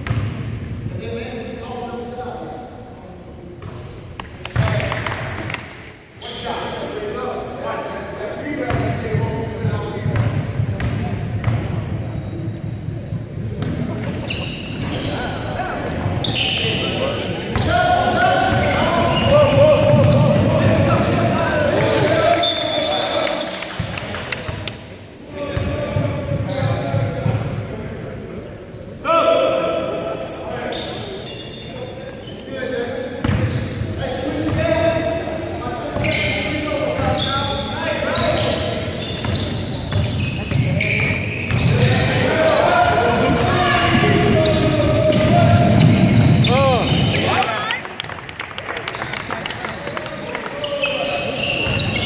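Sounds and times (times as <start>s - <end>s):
voices echoing in a hall: 0.0s - 52.0s.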